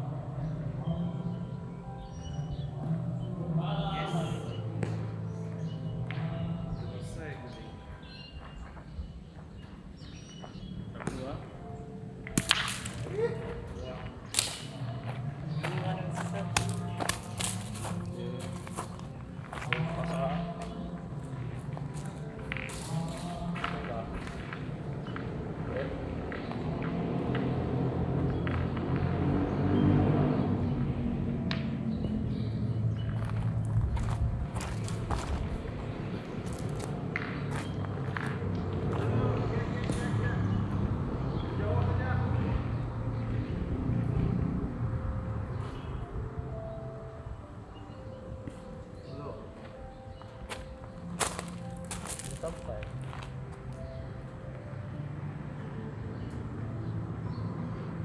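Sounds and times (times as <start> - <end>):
music: 0.0 - 58.0
people talking: 3.4 - 4.8, 6.1 - 8.0, 11.0 - 11.5, 13.1 - 18.8, 19.6 - 21.1, 22.0 - 24.5, 39.0 - 40.8, 41.5 - 42.6, 52.2 - 52.9.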